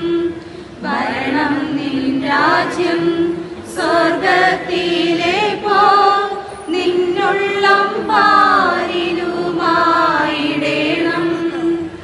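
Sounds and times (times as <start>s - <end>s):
congregation singing a hymn: 0.8s - 12.0s.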